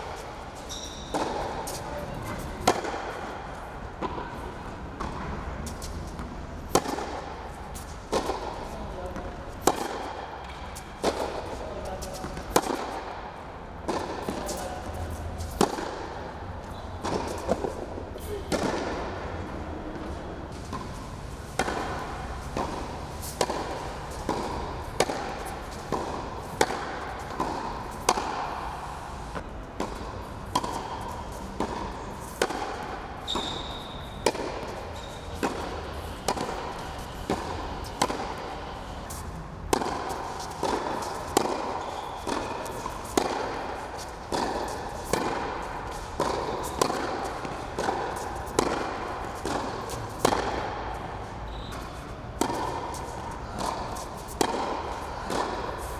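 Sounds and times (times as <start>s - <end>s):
racket striking tennis ball: 0.0s - 55.9s
tennis ball bounces: 0.0s - 55.9s.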